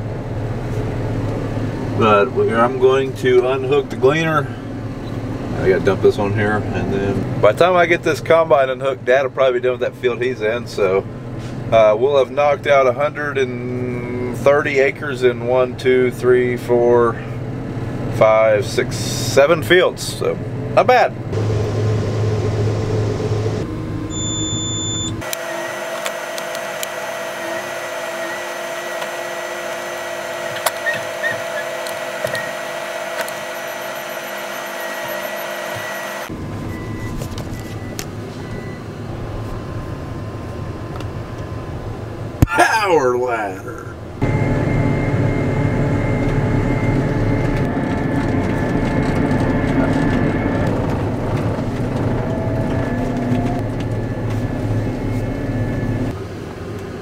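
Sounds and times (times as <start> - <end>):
deep engine rumble: 0.0 - 25.3, 36.2 - 57.0
combine harvester whirring hum: 0.0 - 57.0
high whine tones: 21.3 - 42.6, 44.0 - 56.2
low rumble: 43.8 - 56.1.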